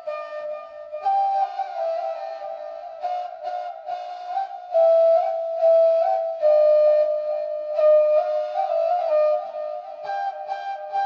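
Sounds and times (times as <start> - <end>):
flute playing slow melody: 0.0 - 11.0.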